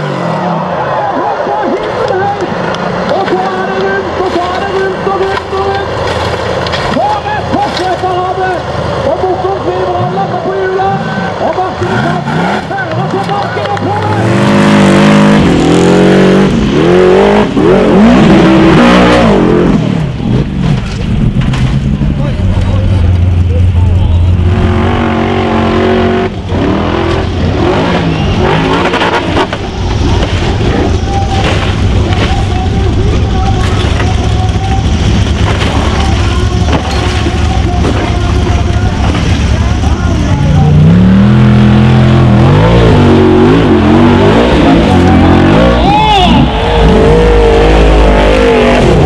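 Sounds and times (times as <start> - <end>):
buggy engine at full throttle: 0.0 - 49.0.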